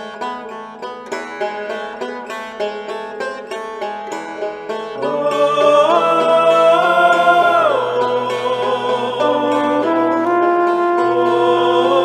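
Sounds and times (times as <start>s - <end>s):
sustained musical accompaniment: 0.0s - 12.0s
sung vocal note sliding down: 5.0s - 10.3s, 11.1s - 12.0s.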